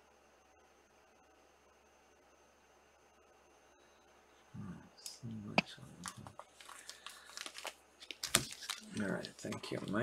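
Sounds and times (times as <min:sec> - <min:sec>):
plastic card sleeves crinkling: 0:06.0 - 0:10.0.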